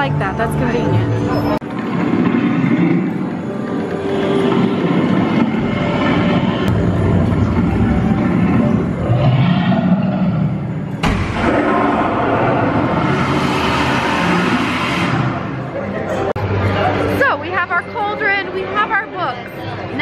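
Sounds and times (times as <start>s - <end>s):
dense rumbling roar: 1.7s - 16.3s.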